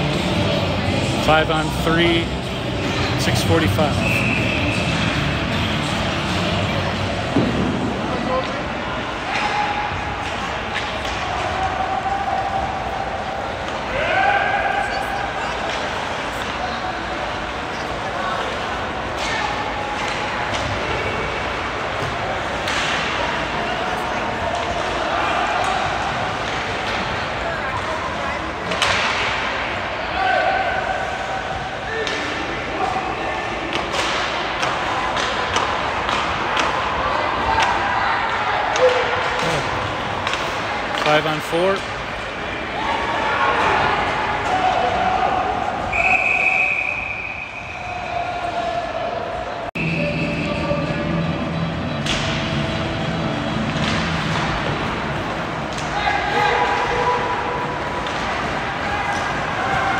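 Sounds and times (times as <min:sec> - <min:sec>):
hockey sticks striking puck: 0:02.8 - 0:12.8, 0:15.4 - 0:17.6, 0:18.3 - 0:29.9, 0:31.5 - 0:45.9, 0:51.0 - 0:59.9.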